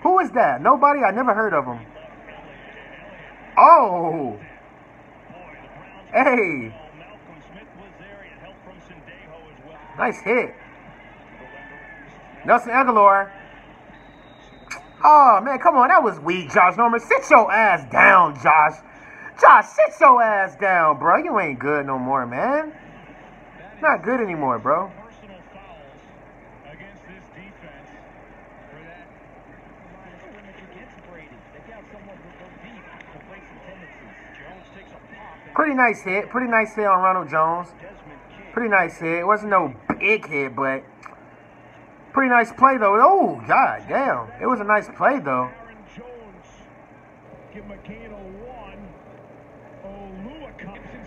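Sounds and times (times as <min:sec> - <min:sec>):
commentator speaking: 0:00.0 - 0:13.6, 0:14.7 - 0:26.0, 0:29.8 - 0:46.7, 0:47.3 - 0:49.2, 0:49.8 - 0:51.0
stadium crowd noise: 0:00.0 - 0:51.0.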